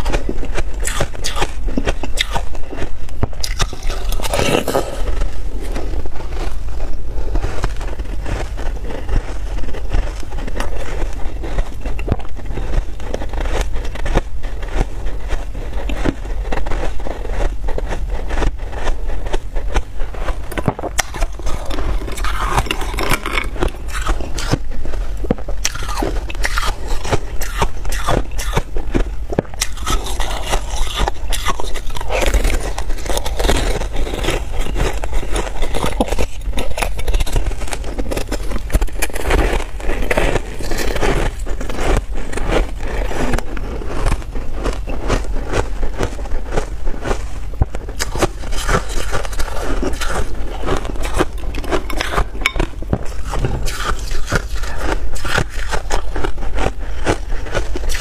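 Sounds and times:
ice crunching while chewed: 0:00.0 - 0:58.0
metal spoon scraping glass bowl: 0:20.4 - 0:24.7, 0:48.0 - 0:56.2.

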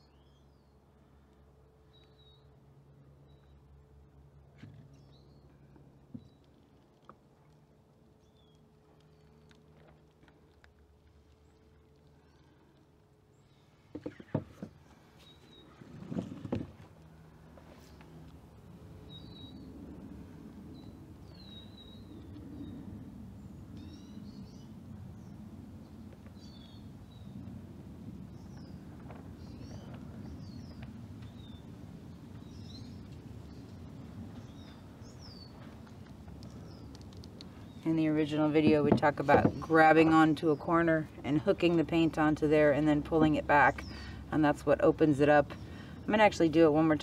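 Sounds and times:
low background rumble: 0:00.0 - 0:47.0
small birds chirping: 0:08.2 - 0:09.6, 0:23.4 - 0:27.5, 0:28.2 - 0:44.3.

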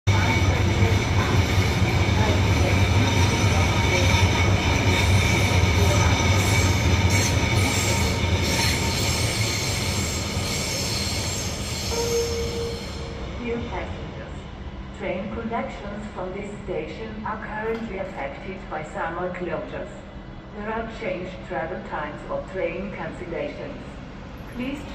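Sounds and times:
train low hum: 0:00.0 - 0:24.9
high-pitched whining tones: 0:00.2 - 0:13.5.

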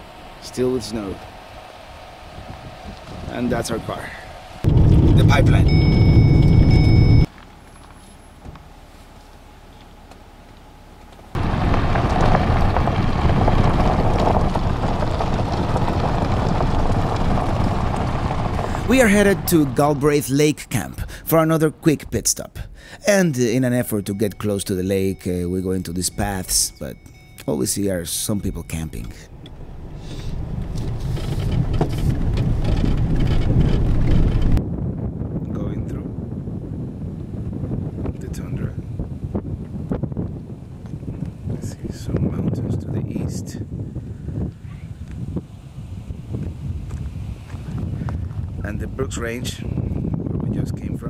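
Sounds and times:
car road rumble on gravel: 0:00.0 - 0:22.8, 0:23.4 - 0:34.7, 0:37.2 - 0:43.8, 0:44.5 - 0:51.0
thin high whines: 0:00.8 - 0:07.3
knocks and rattles: 0:04.7 - 0:07.2, 0:11.4 - 0:20.0, 0:30.8 - 0:34.6.

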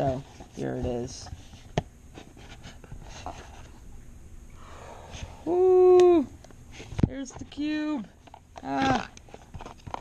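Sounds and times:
man saying ooh: 0:05.4 - 0:06.4.

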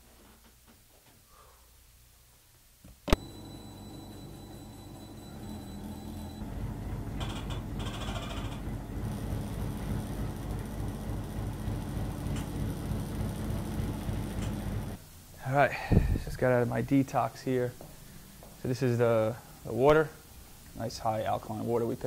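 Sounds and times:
vibration machine humming and rattling: 0:03.2 - 0:15.0.

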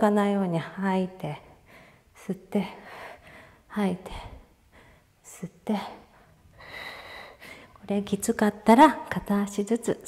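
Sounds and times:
woman speaking: 0:00.0 - 0:01.5, 0:02.2 - 0:02.9, 0:03.7 - 0:04.4, 0:05.3 - 0:06.1, 0:07.8 - 0:10.0.

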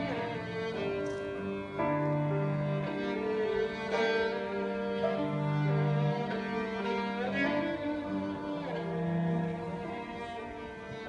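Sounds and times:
cello holding low notes: 0:00.0 - 0:11.0
violin melody: 0:00.0 - 0:11.0.

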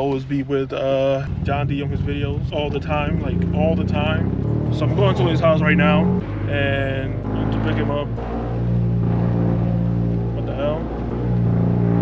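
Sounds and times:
car engine droning inside cabin: 0:01.4 - 0:12.0.

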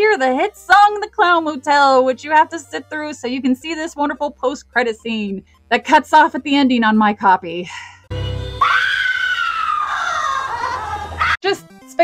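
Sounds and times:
lower wail: 0:08.5 - 0:11.4
high wailing cry: 0:08.6 - 0:11.4.

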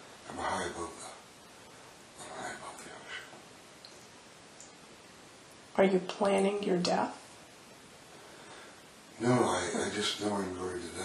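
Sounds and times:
low hiss: 0:00.0 - 0:11.0
man whispering: 0:02.2 - 0:03.4.

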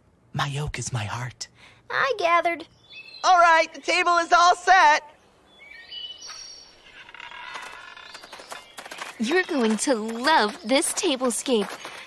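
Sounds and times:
birds chirping: 0:01.0 - 0:12.0.

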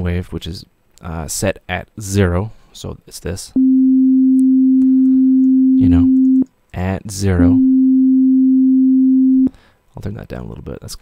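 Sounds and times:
pure sine test tone: 0:03.6 - 0:06.5, 0:07.4 - 0:09.5.

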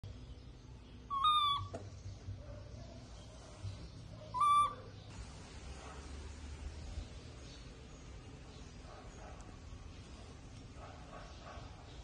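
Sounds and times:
baby monkey high-pitched call: 0:01.1 - 0:01.8, 0:04.3 - 0:04.9.

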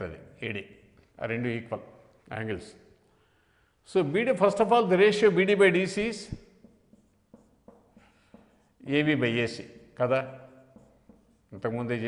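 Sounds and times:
marker writing on whiteboard: 0:05.2 - 0:12.0.

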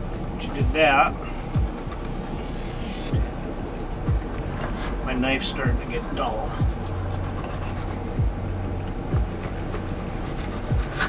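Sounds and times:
background music bass thumps: 0:00.0 - 0:09.9, 0:10.5 - 0:11.0
steady low hum: 0:00.0 - 0:11.0.

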